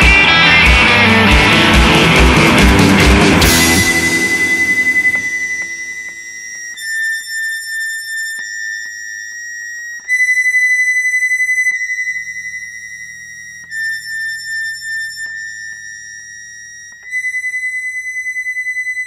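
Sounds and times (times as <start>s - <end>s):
low drone: 0.0s - 6.5s
high two-pitch electronic tone: 0.0s - 19.0s.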